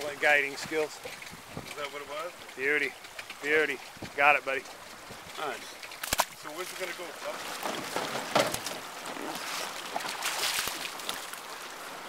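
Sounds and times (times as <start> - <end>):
river water splashing: 0.0 - 12.0.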